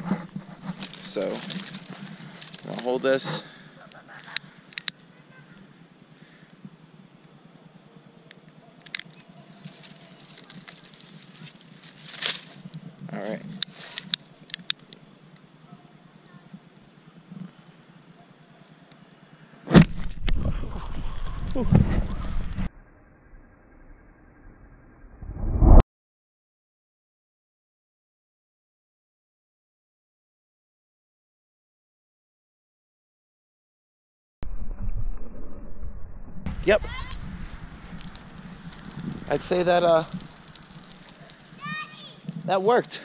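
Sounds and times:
dry corn stalks rustling: 0:00.0 - 0:04.3, 0:08.8 - 0:15.0, 0:36.5 - 0:43.0
fireball whoosh: 0:34.5 - 0:41.6.

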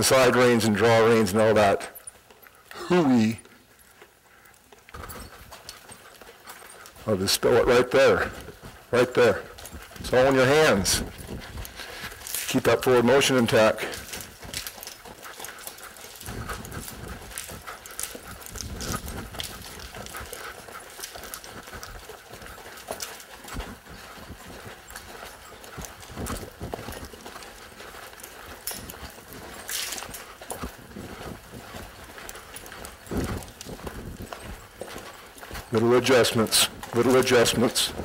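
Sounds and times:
horse hoofbeats on soft ground: 0:00.0 - 0:38.0.

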